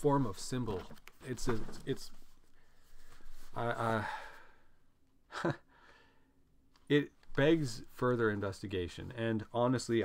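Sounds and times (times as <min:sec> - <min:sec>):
man sighing: 0:03.8 - 0:04.7.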